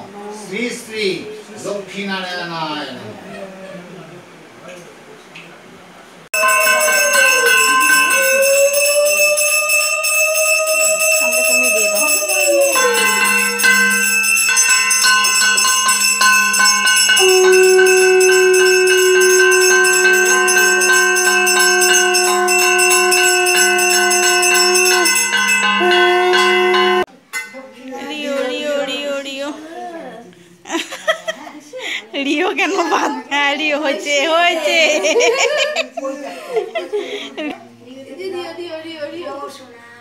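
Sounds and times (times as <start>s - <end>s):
faint murmuring: 3.0s - 6.3s
bell ringing continuously: 6.4s - 27.1s
long held note: 16.5s - 27.1s.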